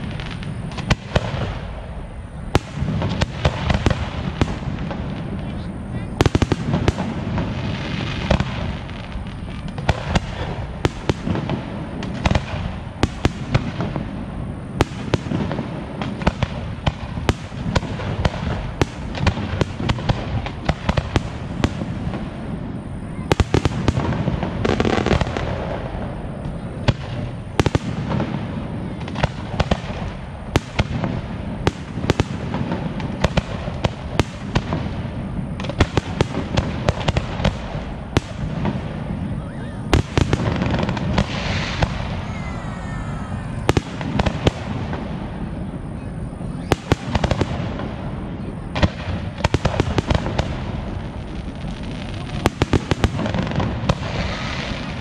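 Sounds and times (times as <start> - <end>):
fireworks bursting: 0.0 - 55.0.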